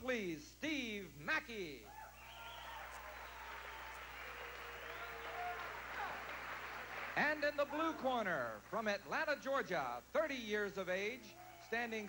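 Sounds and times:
crowd applauding: 2.2 - 8.8.

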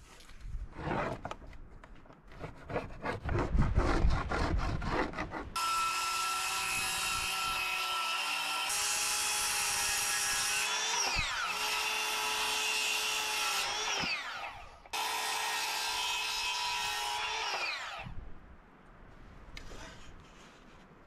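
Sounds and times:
saw blade rasping through wood: 2.3 - 18.1.

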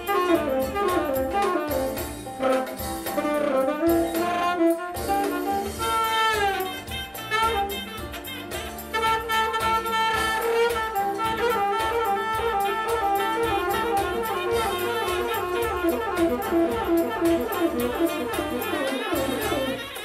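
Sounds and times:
backing track with steady beat: 0.0 - 20.0
saxophone playing: 0.0 - 20.0.

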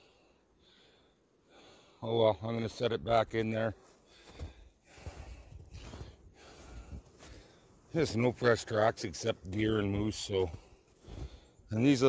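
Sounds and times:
man breathing heavily: 0.0 - 2.0, 3.8 - 7.9, 10.5 - 11.7.

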